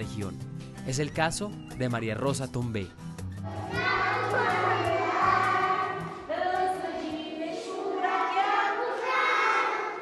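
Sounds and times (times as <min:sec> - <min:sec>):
children singing in unison: 0:03.4 - 0:10.0.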